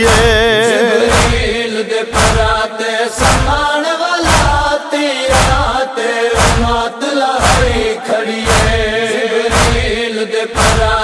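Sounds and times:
deep thuds beat: 0.0 - 11.0
male voices chanting: 0.0 - 11.0.

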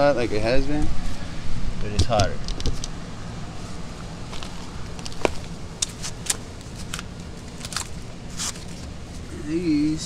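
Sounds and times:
low steady hum: 0.0 - 10.0
crinkling sheet material: 4.3 - 9.4.

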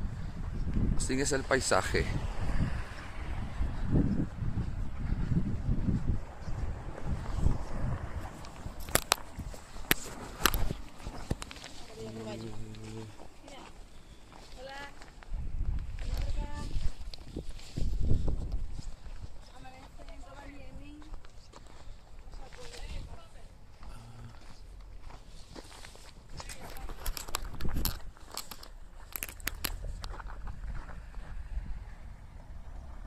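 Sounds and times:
footsteps on packed snow: 3.8 - 26.9.

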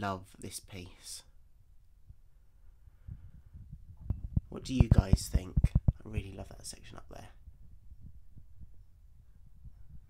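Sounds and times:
quiet low rumble: 0.0 - 10.0
soft low thumps: 3.0 - 6.4, 7.4 - 10.0.

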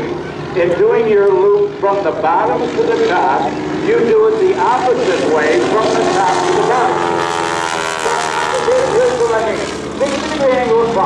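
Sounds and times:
propeller plane engine droning: 0.0 - 11.0.

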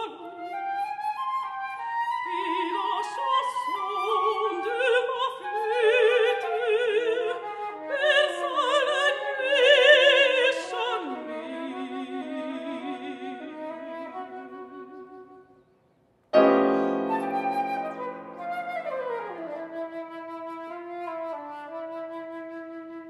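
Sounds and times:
flute playing with vibrato: 0.0 - 10.3, 11.3 - 15.8, 16.4 - 23.0
grand piano chord: 16.4 - 18.4.

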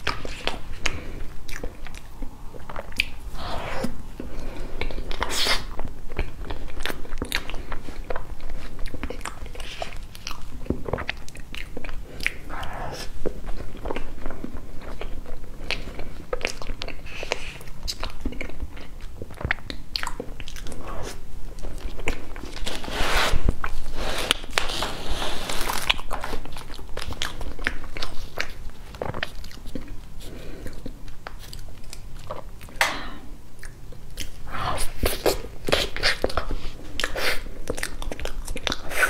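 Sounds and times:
close chewing mouth sounds: 0.0 - 39.0.

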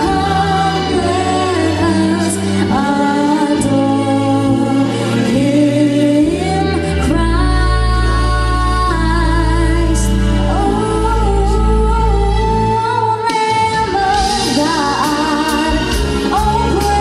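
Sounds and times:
held bass notes: 0.0 - 17.0.

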